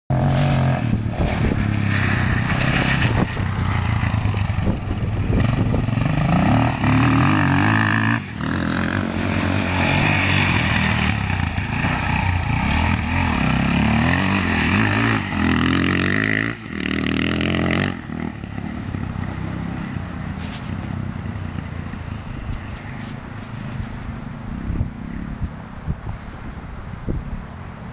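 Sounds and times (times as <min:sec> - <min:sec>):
dirt bike engine revving: 0:00.1 - 0:20.0.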